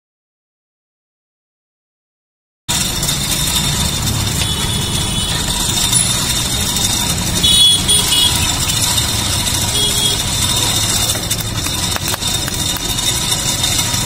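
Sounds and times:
street noise: 0:02.7 - 0:14.0
vehicle engine idling: 0:02.7 - 0:14.0.

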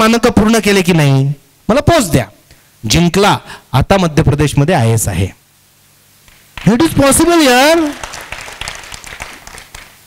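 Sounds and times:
audience applause: 0:07.7 - 0:10.0.

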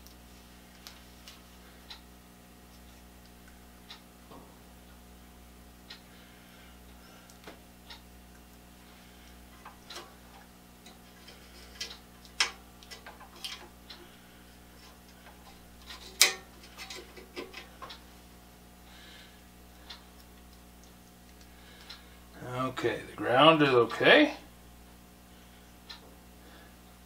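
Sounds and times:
faint steady hum: 0:00.0 - 0:27.0.

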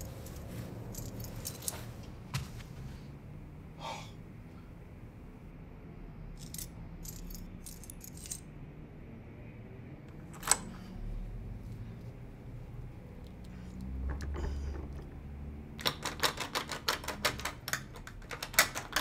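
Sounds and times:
keys jingling: 0:00.0 - 0:02.1, 0:06.4 - 0:08.5, 0:10.2 - 0:10.8.

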